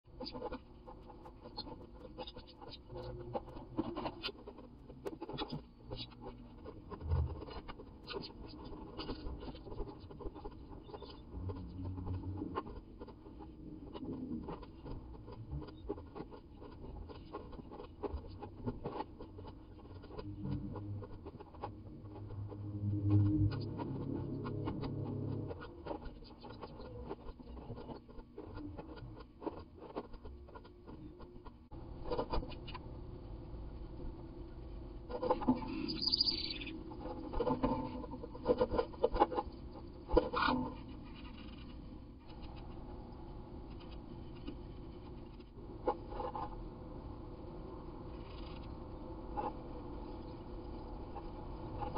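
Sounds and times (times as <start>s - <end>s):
wren chirping: 35.7s - 36.8s.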